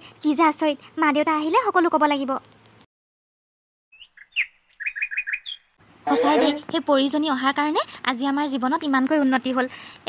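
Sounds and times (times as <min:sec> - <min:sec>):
birds chirping: 0:03.9 - 0:06.7.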